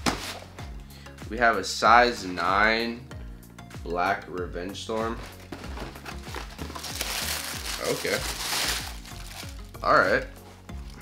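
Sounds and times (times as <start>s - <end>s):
paper crinkling: 5.2s - 9.7s.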